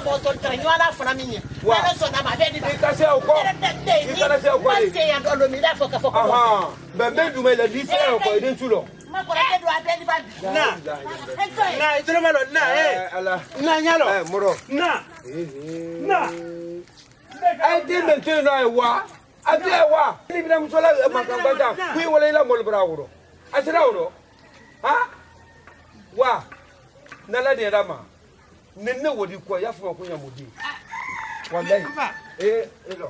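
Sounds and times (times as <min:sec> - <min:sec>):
man shouting: 0:07.2 - 0:13.2
rooster crowing: 0:23.9 - 0:26.2, 0:30.5 - 0:32.9.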